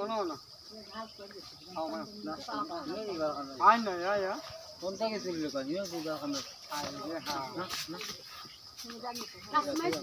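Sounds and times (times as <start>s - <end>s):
steady high hiss: 0.0s - 10.0s.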